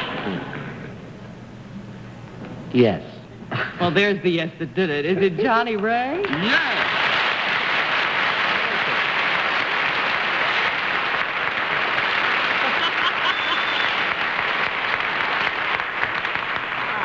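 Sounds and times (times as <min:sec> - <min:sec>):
studio audience applauding: 0:05.8 - 0:17.0.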